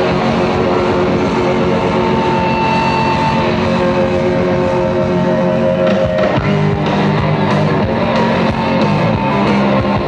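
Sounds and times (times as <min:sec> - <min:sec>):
distorted electric guitars: 0:00.0 - 0:10.0
live rock band playing: 0:00.0 - 0:10.0.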